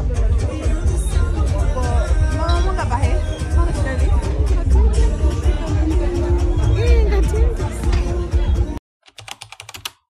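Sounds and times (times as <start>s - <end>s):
crowd noise: 0.0s - 8.8s
music: 0.0s - 8.8s
keyboard typing clicks: 9.0s - 10.0s.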